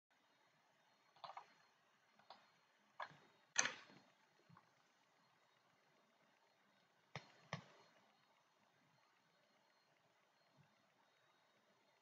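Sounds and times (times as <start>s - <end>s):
computer mouse clicks: 1.1s - 1.6s, 2.2s - 3.9s, 7.1s - 7.8s.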